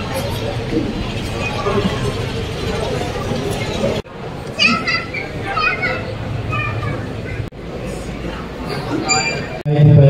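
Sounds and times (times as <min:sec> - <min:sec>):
high-pitched voices talking: 0:00.0 - 0:09.6
low murmured talk: 0:00.0 - 0:10.0.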